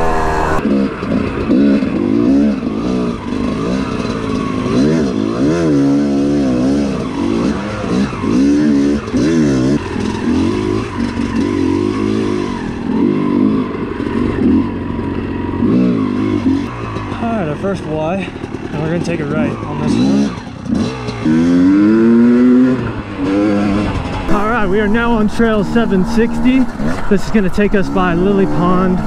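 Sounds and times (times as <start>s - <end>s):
dirt bike engine revving: 0.0s - 29.0s.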